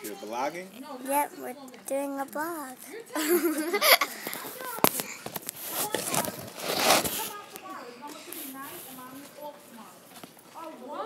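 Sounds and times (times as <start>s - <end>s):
faint children's voices: 0.0s - 11.0s
loud rushing rub: 5.6s - 7.4s.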